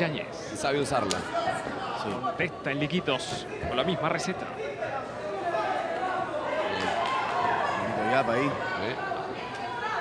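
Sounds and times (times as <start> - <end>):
people shouting in a hall: 4.5 - 10.0.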